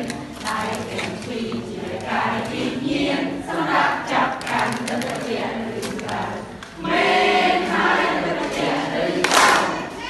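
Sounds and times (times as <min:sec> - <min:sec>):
group singing children's song: 0:00.0 - 0:10.0.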